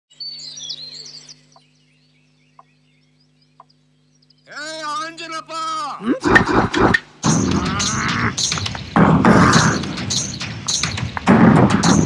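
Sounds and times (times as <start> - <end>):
birds chirping and twittering: 0.1 - 12.0
steady low hum: 0.1 - 12.0.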